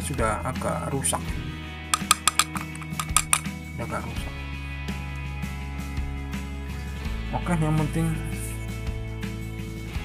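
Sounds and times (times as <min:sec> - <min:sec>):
light metallic clicks and clinks: 0:02.0 - 0:03.5.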